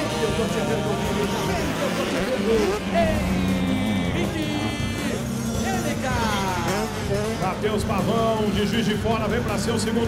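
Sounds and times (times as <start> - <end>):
announcer's voice: 0.0 - 10.0
motocross bike engines revving: 0.0 - 10.0.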